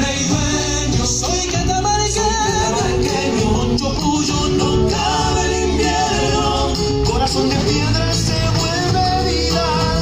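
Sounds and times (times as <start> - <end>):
folk music with singing: 0.0 - 10.0.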